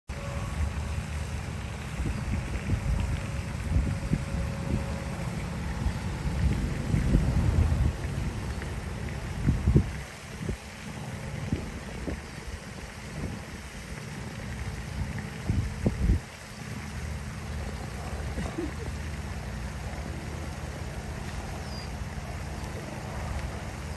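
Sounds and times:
wind buffeting microphone: 0.7 - 16.5.

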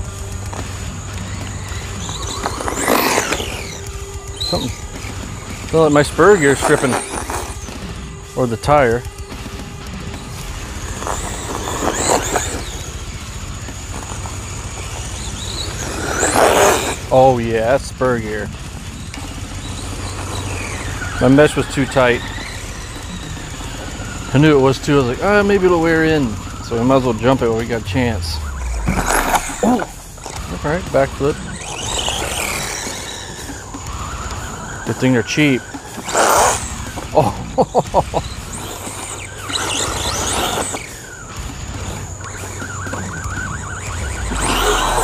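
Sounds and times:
gear grinding: 0.0 - 45.0
toy car drivetrain whine: 0.0 - 45.0.

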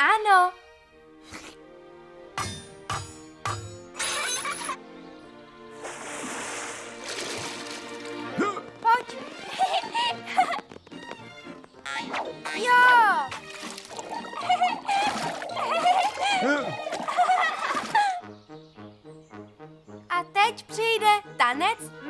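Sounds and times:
background music: 0.0 - 22.0
water splashing into a tub: 5.8 - 8.2, 13.3 - 18.0.

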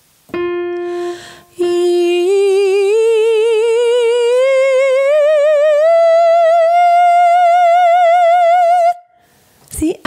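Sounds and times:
woman singing ee vowel with vibrato: 0.9 - 9.1.

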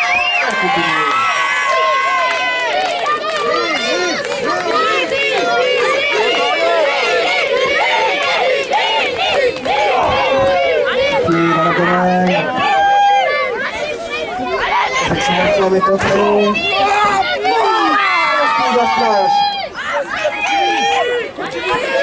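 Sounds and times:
crowd shouting and calling out: 0.0 - 22.0.

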